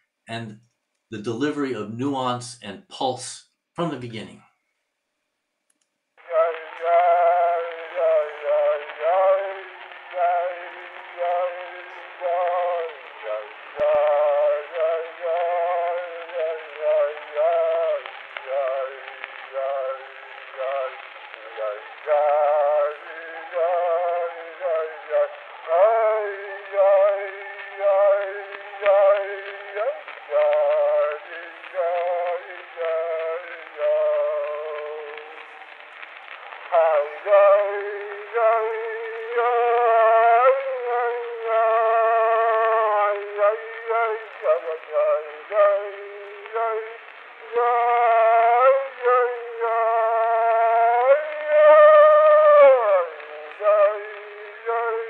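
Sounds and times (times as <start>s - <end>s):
man singing slow song: 6.2s - 55.0s.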